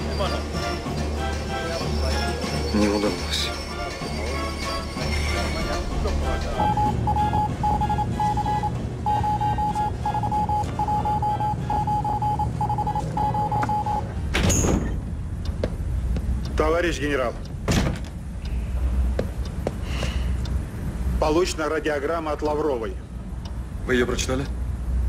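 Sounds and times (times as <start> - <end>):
film score music: 0.0 - 14.3
morse code beeps: 6.3 - 14.1.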